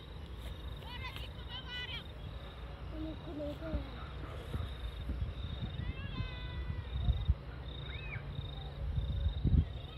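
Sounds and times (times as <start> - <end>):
insect chirping: 0.0 - 9.9
wind rumble: 0.0 - 9.9.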